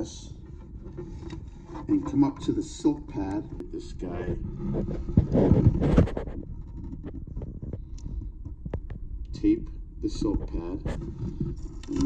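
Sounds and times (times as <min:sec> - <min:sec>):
rubbing and handling rumble: 0:00.0 - 0:12.0.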